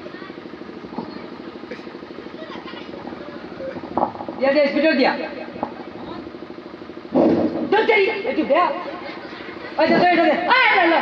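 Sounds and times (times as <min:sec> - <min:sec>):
faint voices: 0:00.0 - 0:06.5
small engine running: 0:00.0 - 0:11.0.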